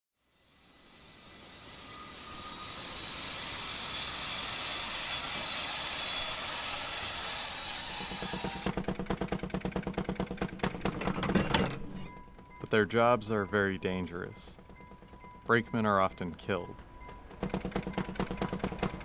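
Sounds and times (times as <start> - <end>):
train wheel squeal: 0.2 - 9.0, 11.3 - 19.0
train rumble on rails: 0.8 - 19.0
fast mechanical clicks: 8.2 - 12.8, 17.0 - 19.0.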